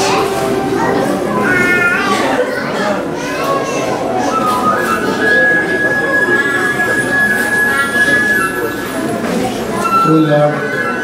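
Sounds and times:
music: 0:00.0 - 0:02.2, 0:04.2 - 0:11.0
children chattering: 0:00.0 - 0:11.0.

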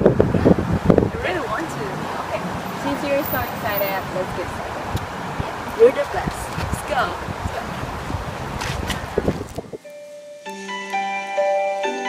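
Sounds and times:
wind rumbling on microphone: 0:00.0 - 0:09.9.

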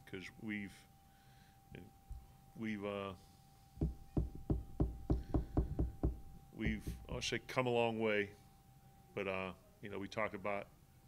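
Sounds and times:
hand tapping on tabletop: 0:03.8 - 0:07.3.

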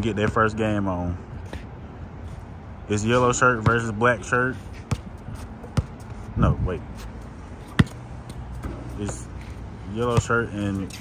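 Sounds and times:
basketball bouncing on court: 0:00.1 - 0:00.6, 0:03.6 - 0:03.9, 0:04.9 - 0:05.1, 0:05.7 - 0:06.0, 0:07.7 - 0:09.3, 0:10.0 - 0:10.5.

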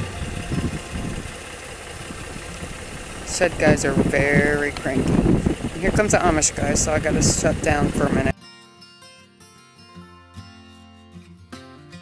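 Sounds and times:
engine rumbling at low speed: 0:00.0 - 0:08.3.

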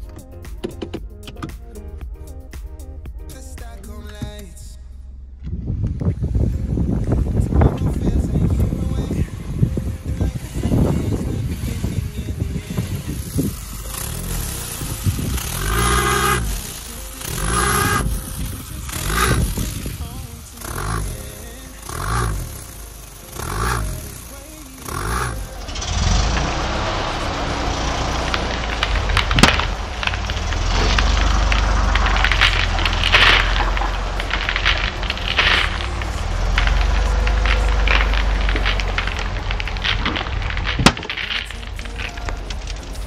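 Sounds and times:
car engine revving: 0:00.0 - 0:43.0
low rumble with crackling: 0:00.0 - 0:43.0
sharp crack of tyre peeling: 0:10.1 - 0:43.0.

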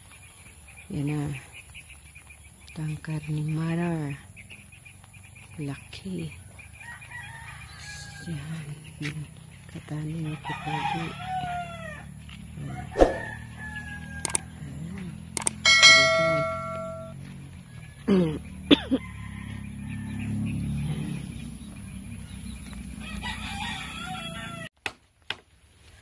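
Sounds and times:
rooster crowing: 0:06.8 - 0:08.3, 0:10.4 - 0:14.5, 0:19.0 - 0:20.3, 0:23.0 - 0:24.7.

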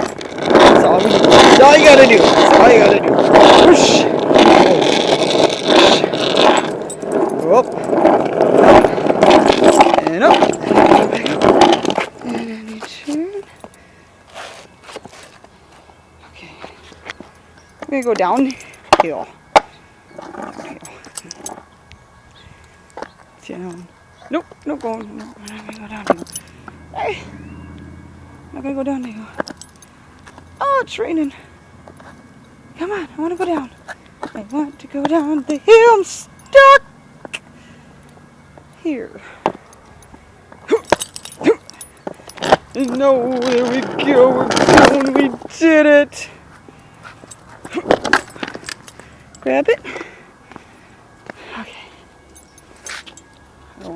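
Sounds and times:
skateboard clattering on asphalt: 0:00.0 - 0:12.2, 0:42.0 - 0:45.7, 0:47.6 - 0:48.8
faint outdoor hiss: 0:00.0 - 0:53.9.

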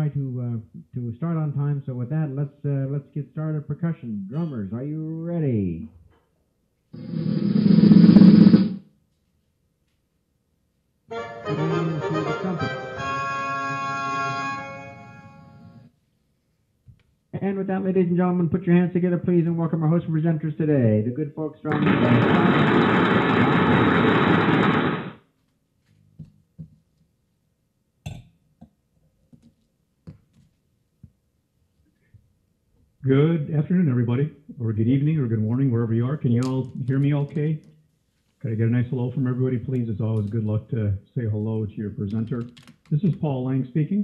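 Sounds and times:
drum roll: 0:07.0 - 0:08.8, 0:21.7 - 0:25.2.

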